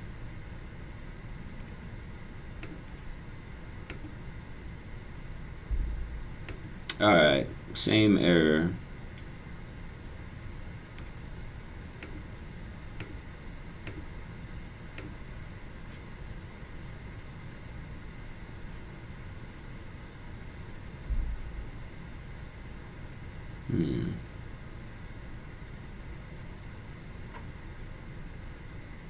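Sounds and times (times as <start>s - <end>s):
low room hum: 0.0s - 29.0s
faint clicks at computer desk: 2.6s - 3.0s, 12.0s - 12.3s, 13.8s - 14.1s.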